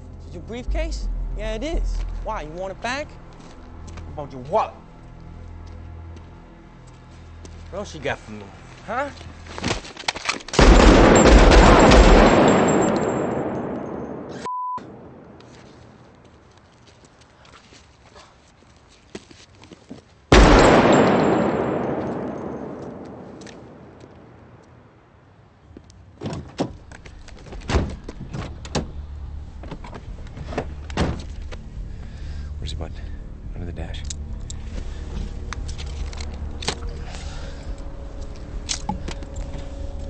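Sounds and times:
pistol shots echoing: 10.6s - 14.4s, 20.3s - 24.0s.

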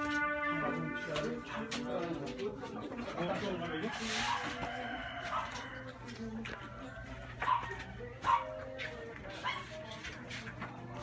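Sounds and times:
dog barking: 5.3s - 5.6s, 7.4s - 8.6s, 9.4s - 9.8s.

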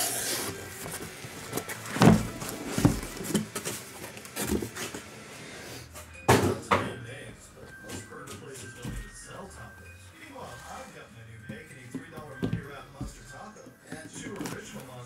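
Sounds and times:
cardboard boxes knocking on table: 1.6s - 3.8s, 11.5s - 14.8s.

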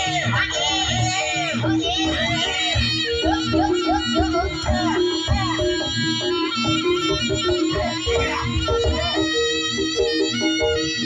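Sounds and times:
high wavering vocal melody: 0.0s - 11.0s.

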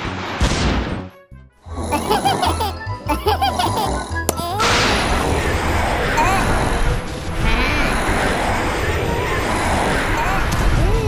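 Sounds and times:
steady rushing noise: 4.6s - 11.0s.

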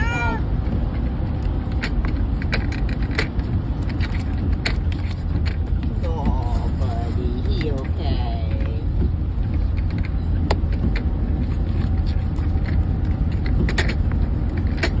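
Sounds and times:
car road rumble inside cabin: 0.0s - 15.0s.

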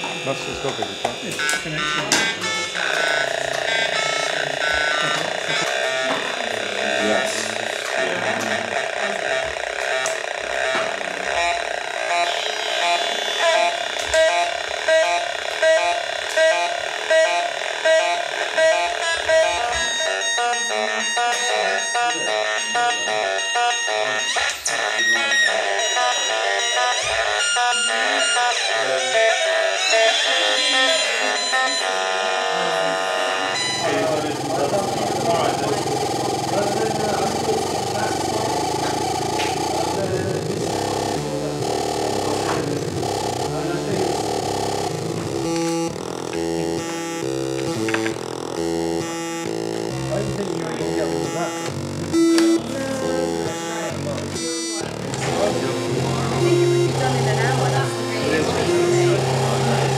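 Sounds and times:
electronic square-wave tones buzzing: 0.0s - 59.9s.

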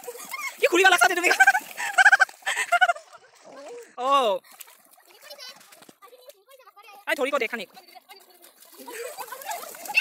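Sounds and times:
girls shrieking and giggling: 0.0s - 3.7s, 8.7s - 10.0s.

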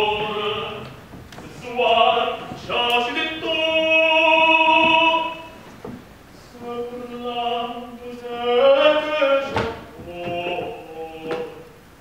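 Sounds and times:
man singing: 0.0s - 5.6s, 6.4s - 11.8s.

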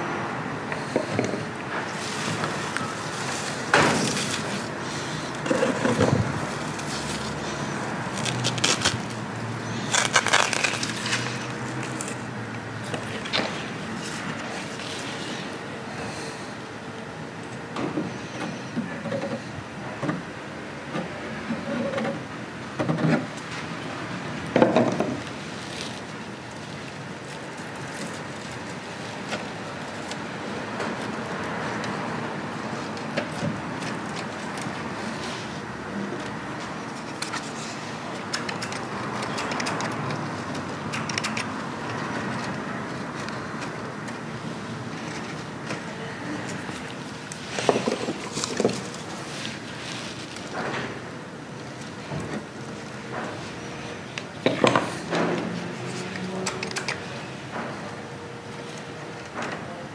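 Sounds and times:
steady background noise: 0.0s - 59.9s
soft rustles of moss: 48.3s - 50.5s.

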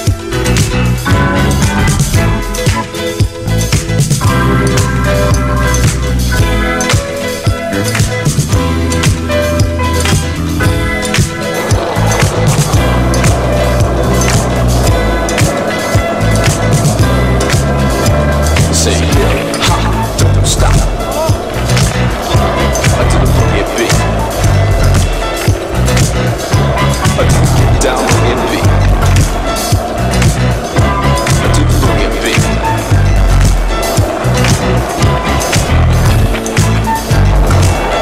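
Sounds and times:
music with bass line: 0.0s - 38.0s
skateboard clacks: 0.0s - 38.0s
skateboard wheels rolling on asphalt: 0.0s - 38.0s.

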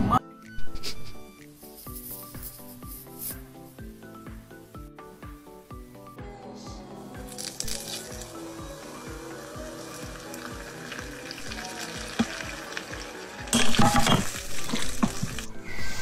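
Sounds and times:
background music with steady beat: 0.0s - 16.0s
hot oil sizzling: 7.3s - 16.0s.

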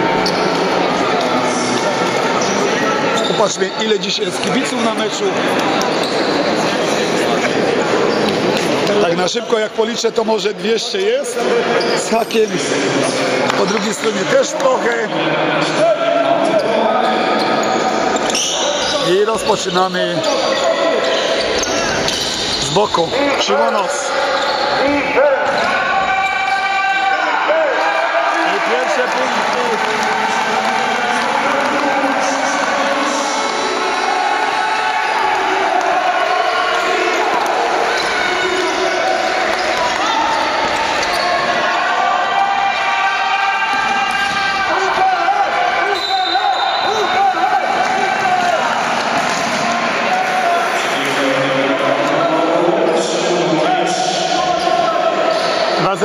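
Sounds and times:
players calling out: 11.0s - 56.0s.

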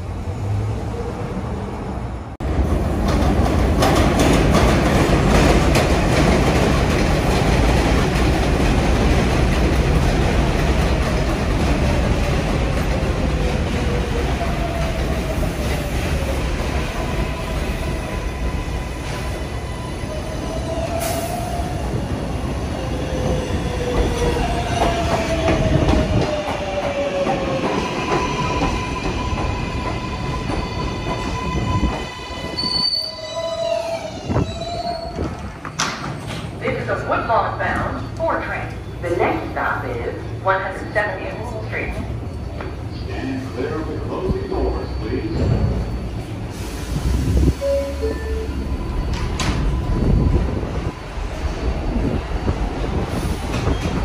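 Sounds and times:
train wheels rumbling on steel: 2.4s - 19.5s
high wheel squeal: 30.7s - 35.3s.

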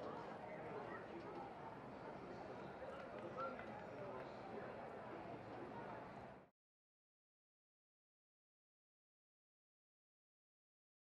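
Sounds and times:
people talking in background: 0.0s - 6.5s.

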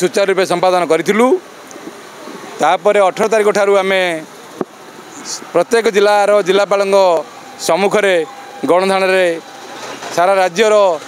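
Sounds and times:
man speaking: 0.0s - 1.4s, 2.6s - 4.3s, 5.2s - 9.5s, 10.1s - 11.0s.

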